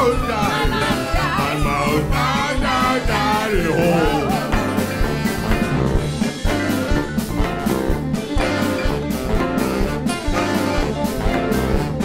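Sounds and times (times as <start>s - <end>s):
blues band playing: 0.0s - 12.0s.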